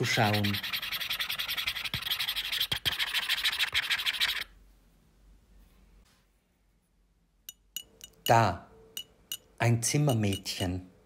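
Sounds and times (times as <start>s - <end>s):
fast grainy scratching: 0.0s - 4.5s.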